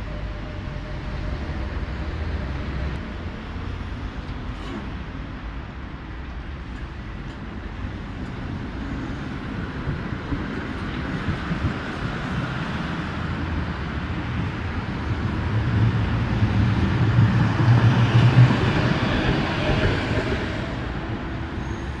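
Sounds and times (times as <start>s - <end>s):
tram rumbling past: 0.0s - 22.0s.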